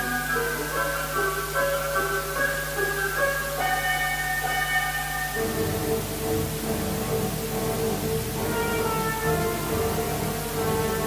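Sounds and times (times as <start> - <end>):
symphony orchestra playing: 0.0 - 11.0.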